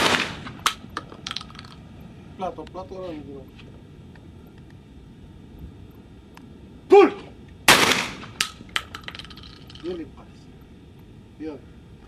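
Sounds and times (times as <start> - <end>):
shotgun blast: 0.0 - 0.7, 7.7 - 8.4
person shouting: 6.9 - 7.3.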